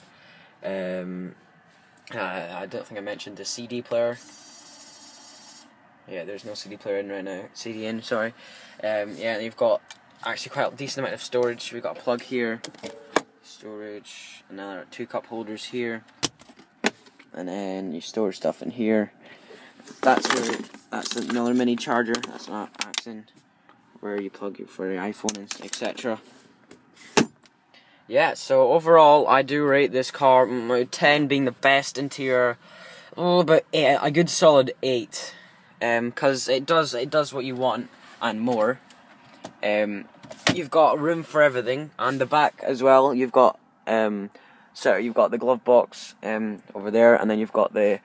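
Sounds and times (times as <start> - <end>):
man speaking: 2.1 - 4.3, 6.1 - 16.0, 17.3 - 19.2, 19.9 - 23.3, 24.0 - 26.3, 28.1 - 32.6, 33.2 - 38.8, 39.6 - 48.0.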